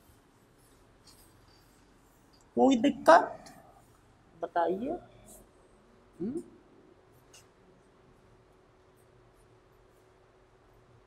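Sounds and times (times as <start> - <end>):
faint scratching of writing: 0.0 - 2.6, 8.8 - 11.0.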